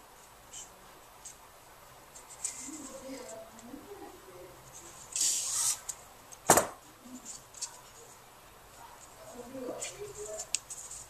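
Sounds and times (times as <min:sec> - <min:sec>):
light clicks and rustle: 0:09.0 - 0:11.0.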